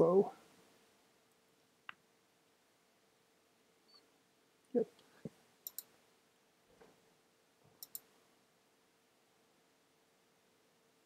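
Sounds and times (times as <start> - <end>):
computer mouse clicking: 5.6 - 5.9, 7.8 - 8.1.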